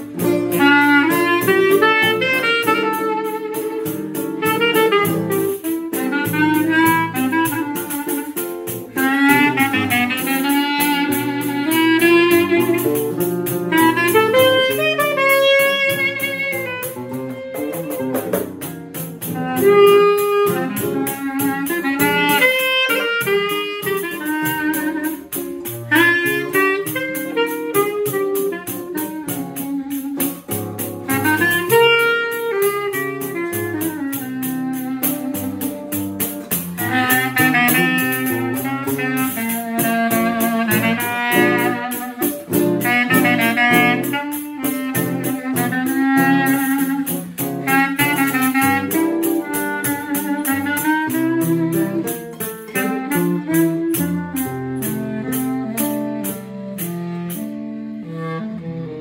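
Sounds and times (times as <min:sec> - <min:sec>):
acoustic guitar bass lines and chords: 0:00.0 - 0:11.7, 0:12.3 - 0:19.6, 0:27.4 - 0:31.2, 0:33.1 - 0:39.3
clarinet melody: 0:00.0 - 0:59.0.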